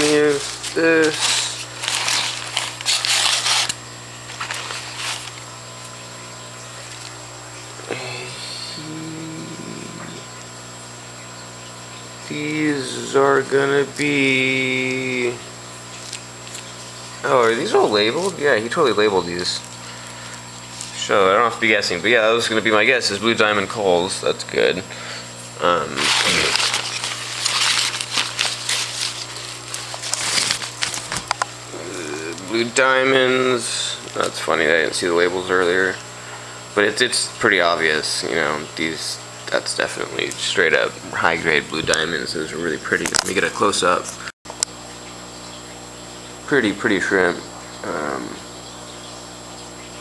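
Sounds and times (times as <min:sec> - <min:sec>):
newspaper crumpling and rustling: 0:00.0 - 0:06.0, 0:15.9 - 0:18.7, 0:25.8 - 0:31.6.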